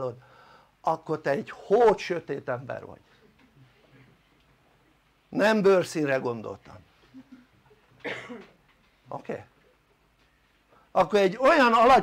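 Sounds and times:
person coughing: 0:08.0 - 0:08.6.

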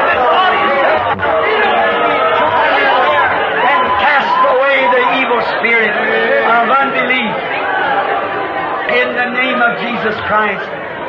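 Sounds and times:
congregation praying aloud: 0:00.0 - 0:10.9.

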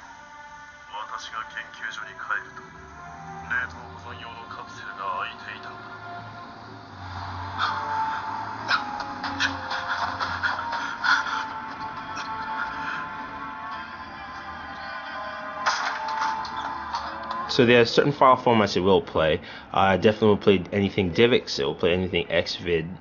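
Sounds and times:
soundtrack music from small speaker: 0:00.0 - 0:18.8
spoken dialogue: 0:00.9 - 0:02.8, 0:03.4 - 0:06.0, 0:17.5 - 0:23.0.

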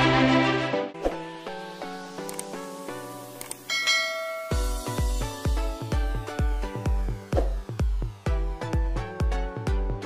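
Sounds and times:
intro music: 0:00.0 - 0:10.0
notification bell chime: 0:03.7 - 0:05.0.

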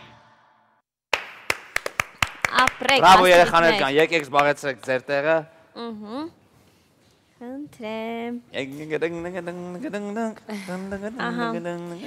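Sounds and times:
hand clapping: 0:01.1 - 0:03.4.

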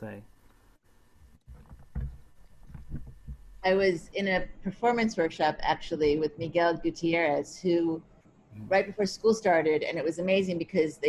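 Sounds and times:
faint voice: 0:00.0 - 0:00.2.

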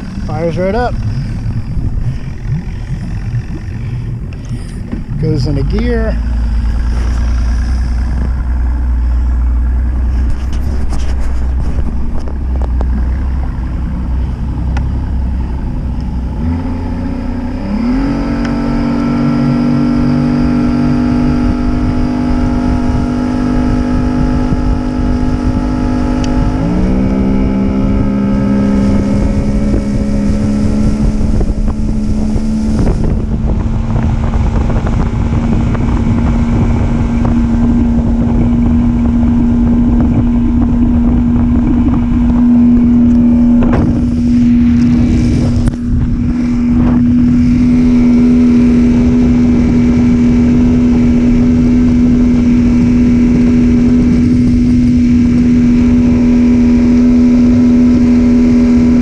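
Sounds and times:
outboard motor running: 0:00.0 - 0:59.0
wind on microphone: 0:00.0 - 0:59.0.

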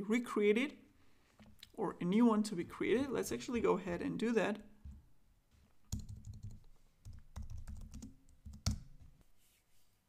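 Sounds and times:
typing on computer keyboard: 0:05.9 - 0:08.9.

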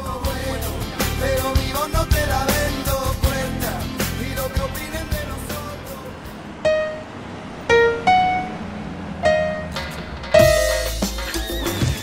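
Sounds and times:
backing track music: 0:00.0 - 0:07.1, 0:09.2 - 0:12.0.

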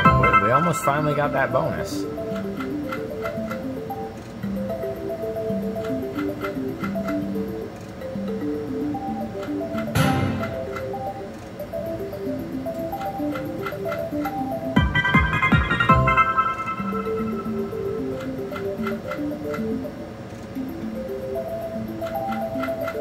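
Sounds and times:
win jingle: 0:00.0 - 0:02.4
slot machine game music: 0:00.0 - 0:23.0.

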